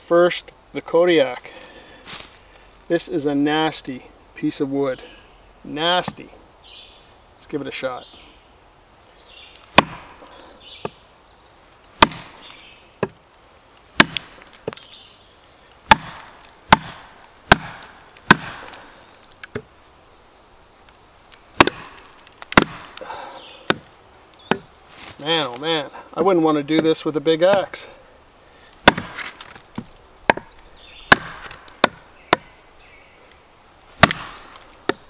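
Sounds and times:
log splitting: 1.5 - 2.7, 5.9 - 6.3, 9.4 - 11.0, 11.6 - 19.7, 20.8 - 28.0, 28.7 - 32.7, 33.3 - 35.0.

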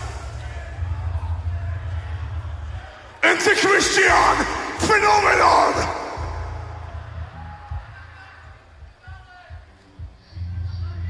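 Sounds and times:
harsh growled shouts: 3.2 - 7.2
low rumble: 4.4 - 8.0.

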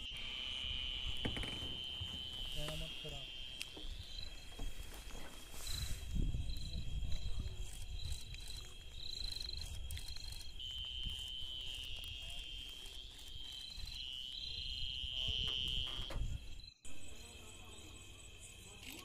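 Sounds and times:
crickets chirring: 0.0 - 19.0.

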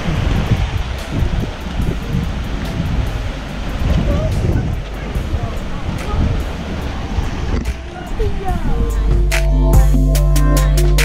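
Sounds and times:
ocean surge washing on rock: 0.0 - 9.0
wind buffeting microphone: 0.0 - 9.9.

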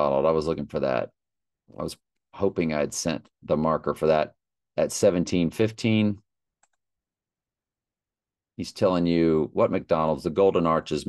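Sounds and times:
faint mouse click: 6.6 - 6.8.

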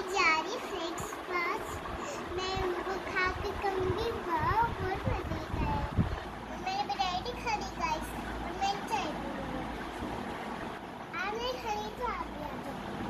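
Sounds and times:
children chattering and calling out: 0.0 - 9.9, 11.1 - 13.0
steady background noise: 0.0 - 13.0.

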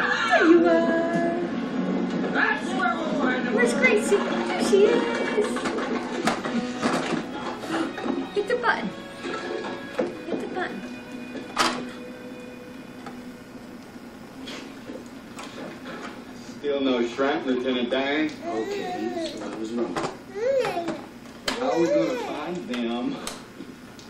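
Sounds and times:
television speech and music: 0.0 - 24.0.

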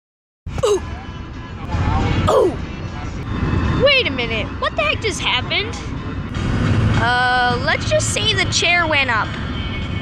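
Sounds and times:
car road noise rumble: 0.5 - 10.0
high-pitched voice: 0.6 - 0.8, 2.3 - 2.6.

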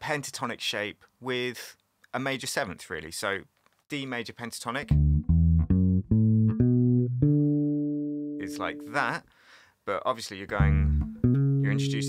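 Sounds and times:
electric bass notes: 4.8 - 9.0, 10.6 - 12.0.

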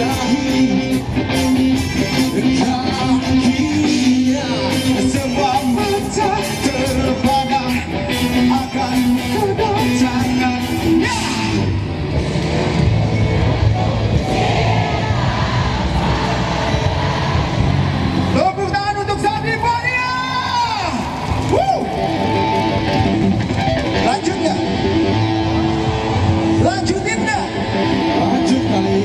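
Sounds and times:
live pop-rock band playing: 0.0 - 29.0.

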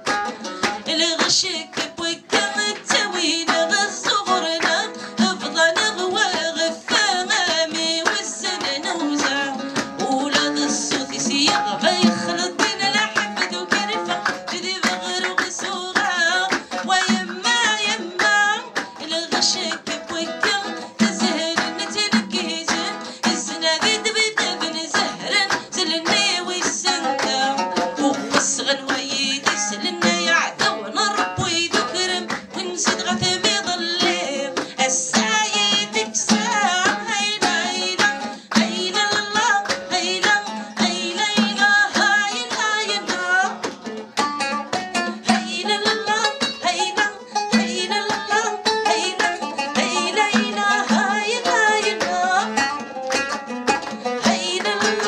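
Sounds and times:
hand drum beating: 0.0 - 55.0
woman singing: 0.0 - 55.0.

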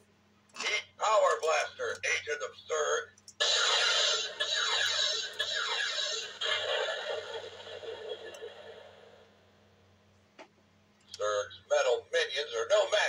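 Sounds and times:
toy blaster electronic hiss and zaps: 3.4 - 8.6.

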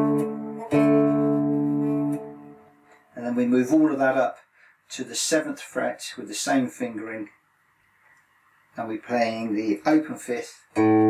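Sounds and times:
electric guitar power chord ringing: 0.0 - 2.6, 10.8 - 11.0.

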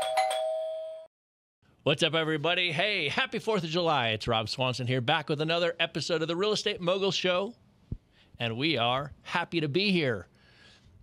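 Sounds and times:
two-tone doorbell-like chime: 0.0 - 1.1.

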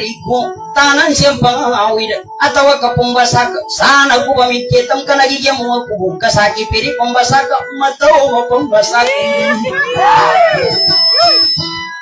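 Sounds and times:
person singing: 9.0 - 10.8.

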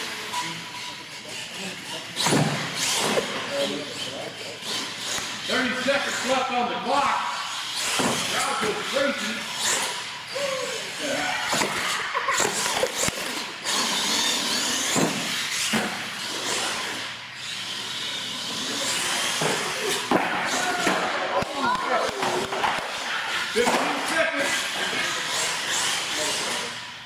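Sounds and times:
toy truck motor whirring: 0.0 - 6.3, 7.4 - 20.8, 24.4 - 27.0
indistinct voices in echoing hall: 0.0 - 27.0.

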